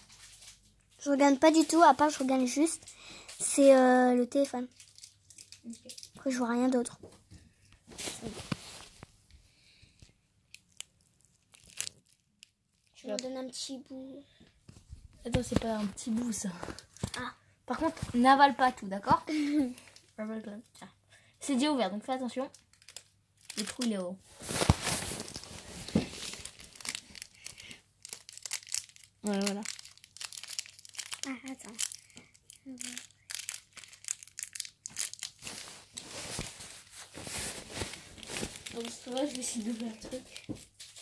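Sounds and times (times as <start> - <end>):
plastic candy bag crinkling: 0.0 - 6.9, 9.8 - 13.2, 22.4 - 41.0.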